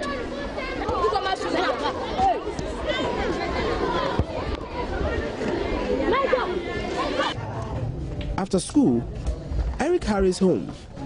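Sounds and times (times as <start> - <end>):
children shouting and chattering: 0.0 - 8.3.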